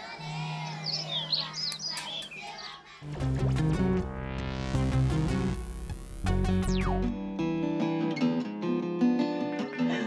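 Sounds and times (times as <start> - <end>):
birds chirping: 0.0 - 3.0.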